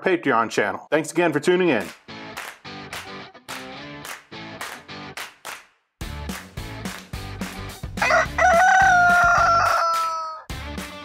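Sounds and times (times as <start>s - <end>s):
rooster crowing: 8.0s - 10.5s.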